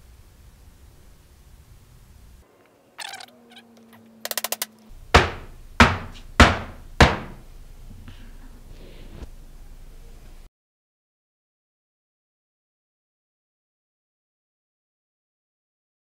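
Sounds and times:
quick clicks: 0:03.0 - 0:04.9.

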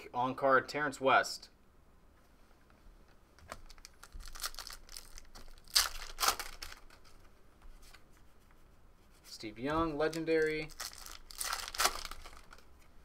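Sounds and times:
cards rustling: 0:03.5 - 0:08.0, 0:09.6 - 0:12.9
foil wrapper tearing and crinkling: 0:03.7 - 0:07.1, 0:10.0 - 0:12.7.

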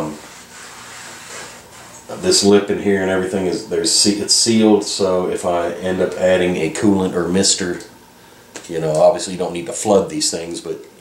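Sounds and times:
hand rubbing on metal: 0:00.0 - 0:02.7.

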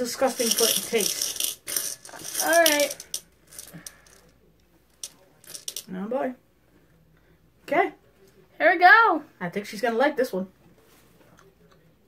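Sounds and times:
jelly beans rattling in container: 0:00.0 - 0:04.3, 0:05.0 - 0:05.9.

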